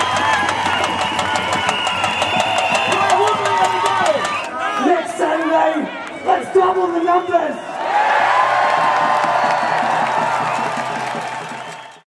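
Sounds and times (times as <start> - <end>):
crowd cheering and shouting: 0.0 - 12.0.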